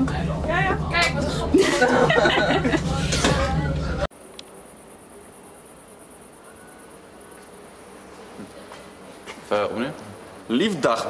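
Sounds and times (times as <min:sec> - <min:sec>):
crickets chirping: 0:04.1 - 0:10.8.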